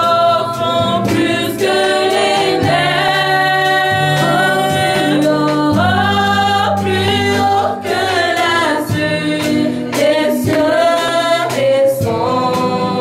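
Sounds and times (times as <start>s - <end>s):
women singing a hymn: 0.0s - 13.0s.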